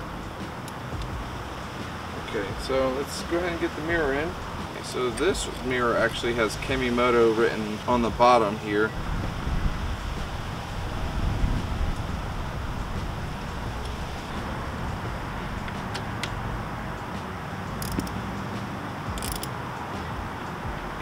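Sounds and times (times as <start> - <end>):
wind rumble on microphone: 7.9 - 17.4.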